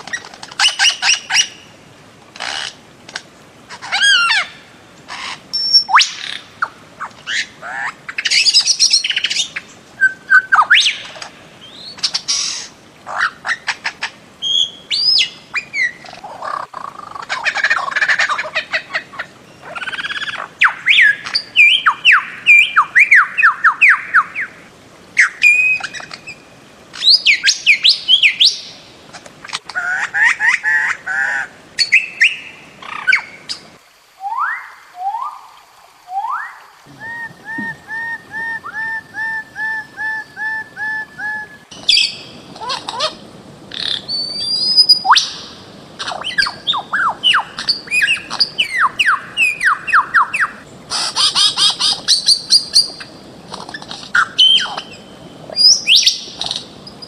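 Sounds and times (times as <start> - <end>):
birds squawking harshly: 48.0 - 52.4.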